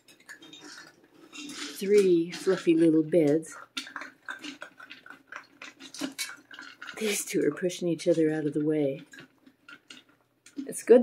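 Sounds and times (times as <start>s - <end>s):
kibble clinking in metal bowls: 0.0s - 4.9s.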